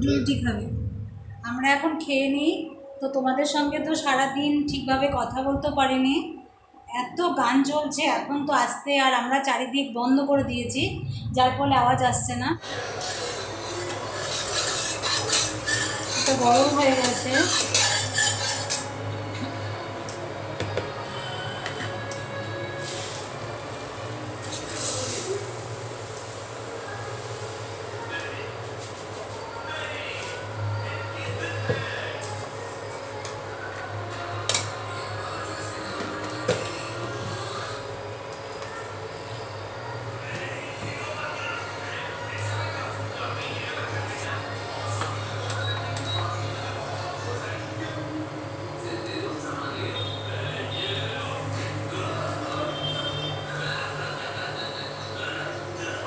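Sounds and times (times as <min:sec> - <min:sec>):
induction cooktop humming: 0:10.0 - 0:56.0.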